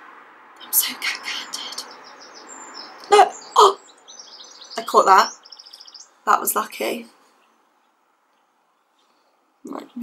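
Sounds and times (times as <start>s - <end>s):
bird chirping in high trills: 0.7s - 6.5s.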